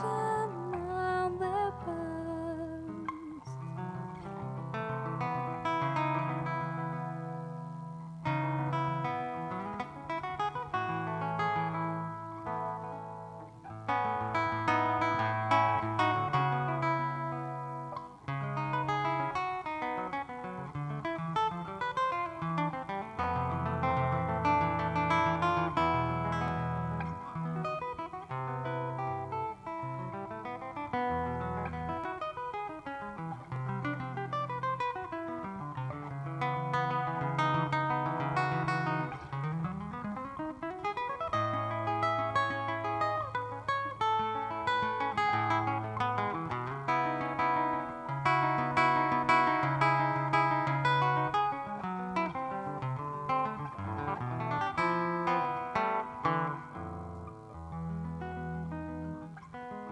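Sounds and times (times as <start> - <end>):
fingerpicked jazz guitar: 0.0 - 59.9.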